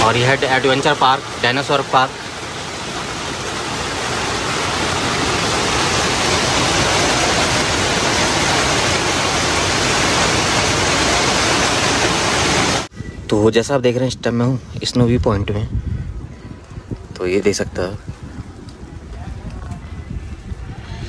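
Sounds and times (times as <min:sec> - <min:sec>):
heavy rain on plastic tarpaulin: 0:00.0 - 0:12.9.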